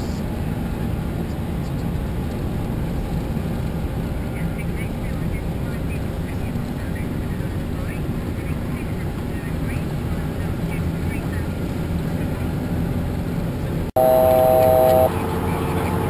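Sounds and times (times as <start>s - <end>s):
jet cockpit airflow rumble: 0.0s - 16.0s
multi-pitch steady tone: 14.0s - 16.0s.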